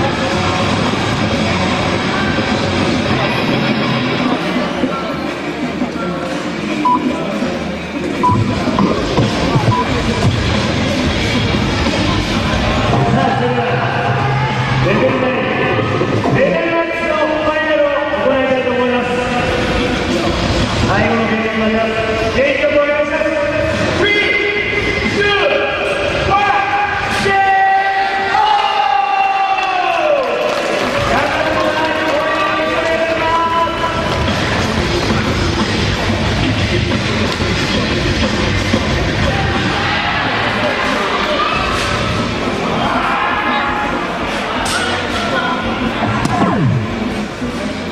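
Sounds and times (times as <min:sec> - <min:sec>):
hall noise: 0:00.0 - 0:21.3, 0:45.4 - 0:47.9
background music: 0:00.0 - 0:47.9
crowd noise in hall: 0:00.0 - 0:47.9
dartboard machine beeps: 0:08.2 - 0:09.0, 0:09.6 - 0:10.0
held electronic tones: 0:08.2 - 0:10.0, 0:46.3 - 0:47.1.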